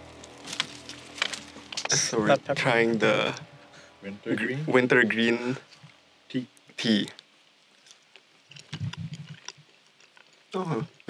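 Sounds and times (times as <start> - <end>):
low rough hum: 0.0 - 6.8
man chewing a leaf: 7.6 - 11.0.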